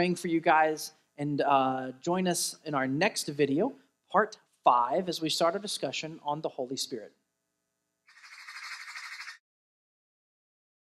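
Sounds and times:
harsh raspy squawk: 0:08.1 - 0:09.4.

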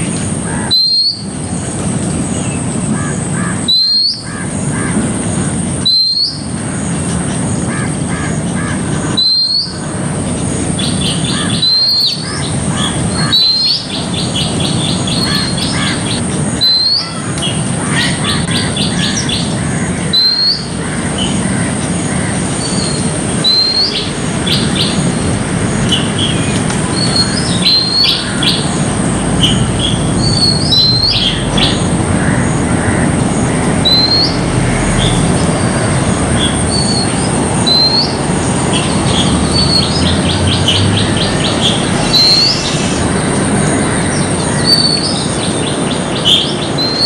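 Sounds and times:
bird chirps: 0:00.7 - 0:01.3, 0:03.7 - 0:04.3, 0:05.8 - 0:06.5, 0:09.1 - 0:09.8, 0:10.6 - 0:32.7, 0:33.6 - 0:47.0
bird upslurred whistle: 0:00.7 - 0:01.3, 0:05.8 - 0:06.5.

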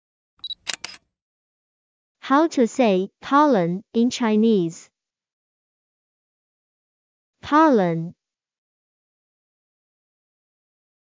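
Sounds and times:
sharp clicks: 0:00.4 - 0:01.0.

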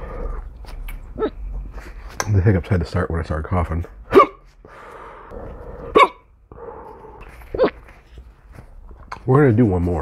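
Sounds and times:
man hiccuping: 0:04.1 - 0:04.4, 0:05.9 - 0:06.3
quiet breathing: 0:04.6 - 0:05.8, 0:06.5 - 0:07.5.

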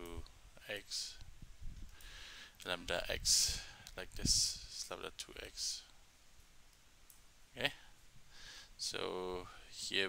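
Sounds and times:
man speaking: 0:00.0 - 0:01.2, 0:02.6 - 0:05.9, 0:07.6 - 0:07.9, 0:08.8 - 0:10.0.

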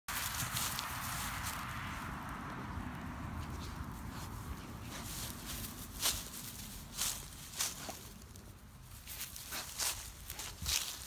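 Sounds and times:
footsteps crunching dry grass: 0:00.1 - 0:11.0.

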